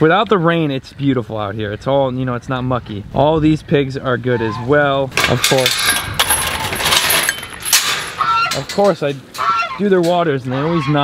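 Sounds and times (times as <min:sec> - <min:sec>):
metal gate latch rattling: 0:05.1 - 0:10.2.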